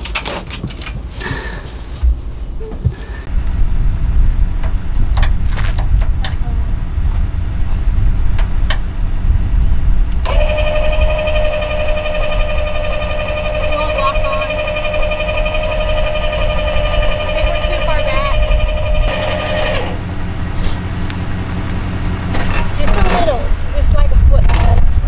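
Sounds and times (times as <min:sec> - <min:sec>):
steady low rumble: 0:00.6 - 0:25.0
electric jack motor whine: 0:10.2 - 0:22.0.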